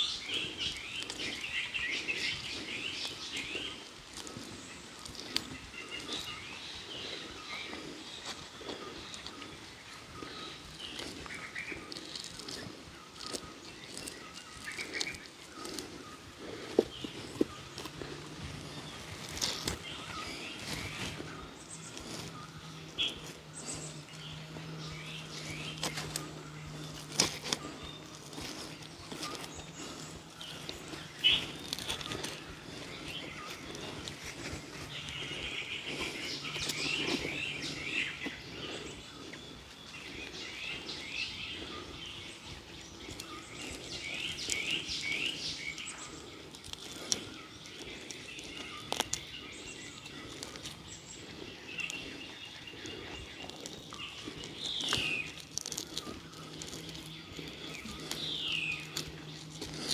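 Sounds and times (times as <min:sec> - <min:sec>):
small birds chirping: 0:00.0 - 0:59.9.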